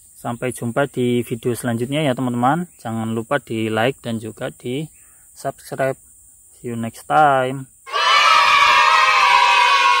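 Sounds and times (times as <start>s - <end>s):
children cheering yay: 7.9s - 10.0s.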